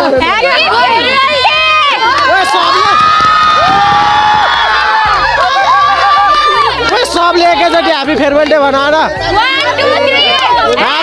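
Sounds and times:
women shrieking and cheering: 0.2 - 8.0.

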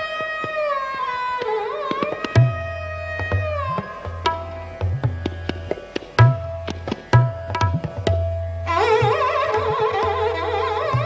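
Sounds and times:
sarangi sliding note: 0.0 - 11.0
tabla strokes: 0.0 - 11.0.

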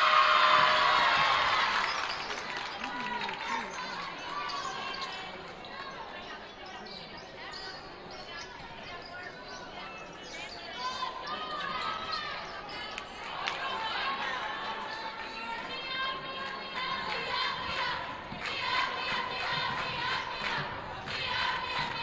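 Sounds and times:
spectators' voices echoing: 0.0 - 22.0
sneaker squeaks: 3.8 - 12.9.

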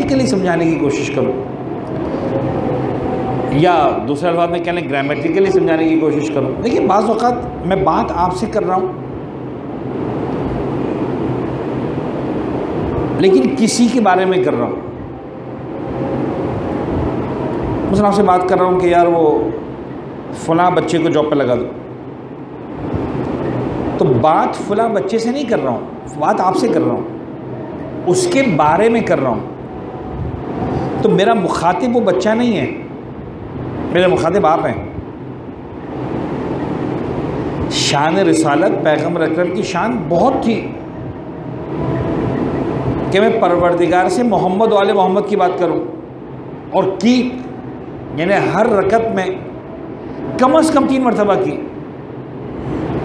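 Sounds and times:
low hum with hiss: 0.0 - 53.0
steady rushing noise: 0.0 - 53.0.

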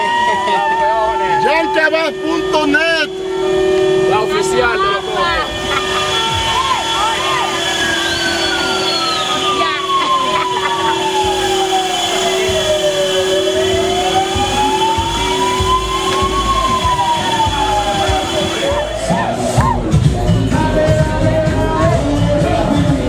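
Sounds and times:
siren wailing: 0.0 - 19.9
steady held tone: 0.5 - 19.6
rumble of vehicles in traffic: 0.9 - 23.0.

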